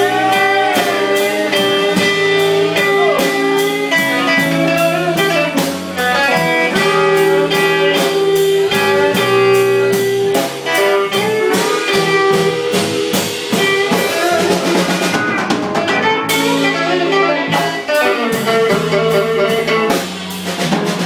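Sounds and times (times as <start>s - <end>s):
drum kit beat: 0.0s - 21.0s
electric guitars: 0.0s - 21.0s.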